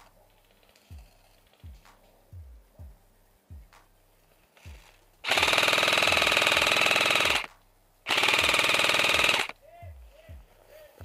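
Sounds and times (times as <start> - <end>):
airsoft rifle full-auto bursts: 5.2 - 7.5, 8.1 - 9.6.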